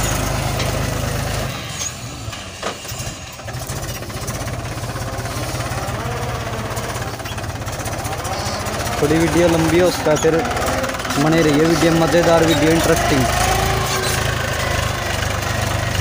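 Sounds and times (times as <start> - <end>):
tractor diesel engine running: 0.0 - 16.0.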